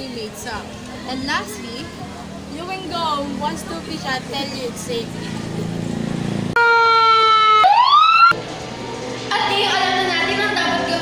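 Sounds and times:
fire truck siren wailing: 6.6s - 8.4s.

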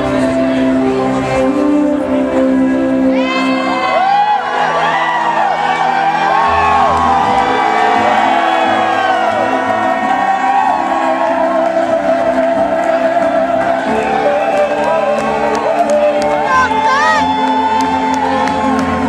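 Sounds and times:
crowd whooping and cheering: 3.1s - 19.0s.

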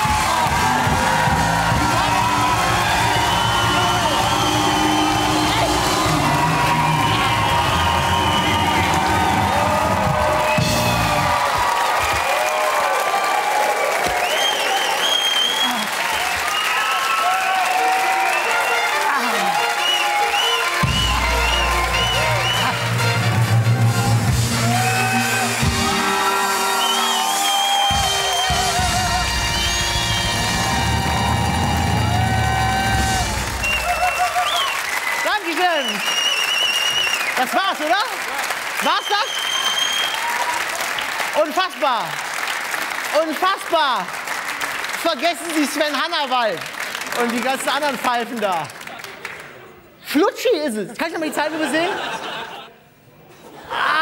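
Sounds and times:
studio band playing: 0.0s - 11.7s, 17.7s - 34.6s
audience cheering and applauding: 0.0s - 49.9s.

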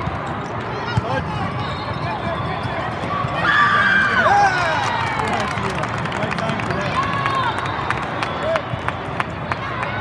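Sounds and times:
echoing sports hall hubbub: 0.0s - 10.0s.

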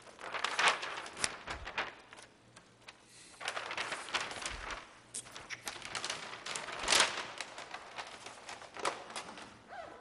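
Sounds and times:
paper rustling and crinkling: 0.0s - 9.7s.

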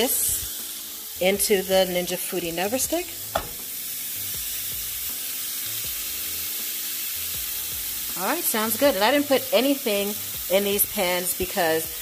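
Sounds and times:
steak sizzling in a pan: 0.0s - 12.0s.

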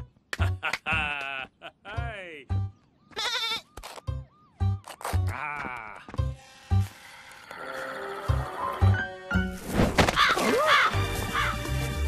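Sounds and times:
cartoon sheep bleating: 3.1s - 3.6s.

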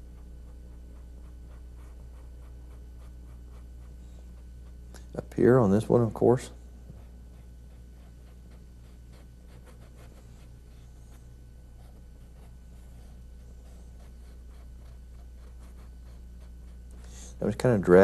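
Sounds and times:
paintbrush scratching on canvas: 0.0s - 6.0s, 6.9s - 18.0s
low electrical hum: 0.0s - 18.0s.

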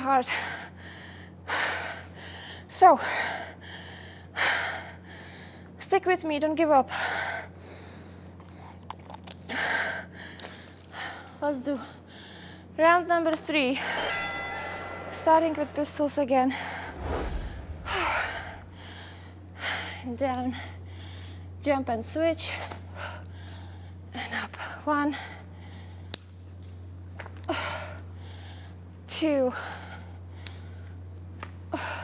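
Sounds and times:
woman breathing hard: 0.3s - 5.8s, 17.6s - 21.6s
low rumble: 13.8s - 19.8s.

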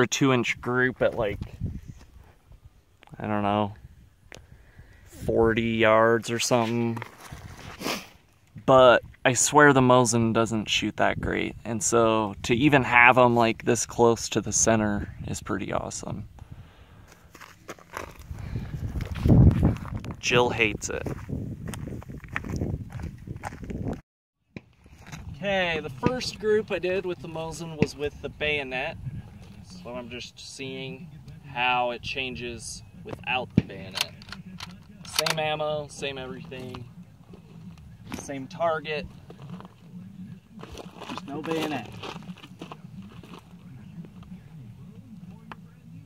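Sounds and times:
footsteps on stony ground: 17.0s - 24.0s, 24.6s - 25.4s, 33.6s - 44.5s.

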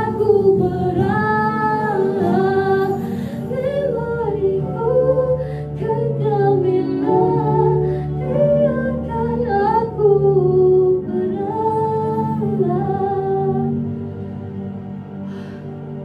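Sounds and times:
woman singing slow melody: 0.0s - 14.0s
backing track low notes: 0.0s - 16.0s.

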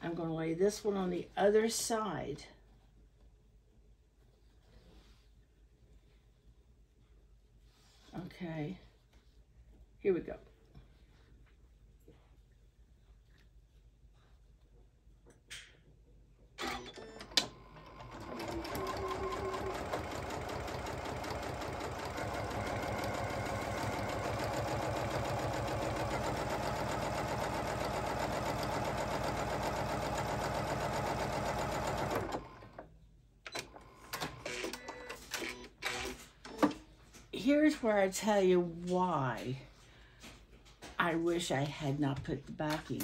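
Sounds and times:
sewing machine stitching: 16.6s - 32.8s.

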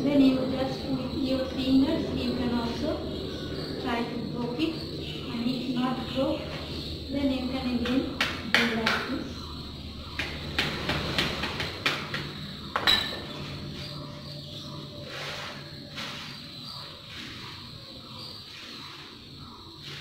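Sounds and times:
low steady hum: 0.0s - 18.2s.

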